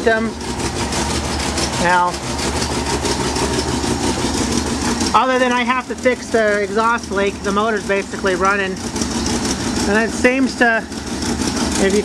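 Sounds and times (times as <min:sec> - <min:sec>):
pickup engine idling: 0:00.0 - 0:12.0.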